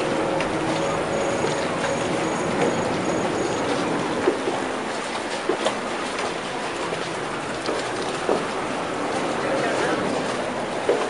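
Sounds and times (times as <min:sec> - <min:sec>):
water lapping against boats: 0:00.0 - 0:11.0.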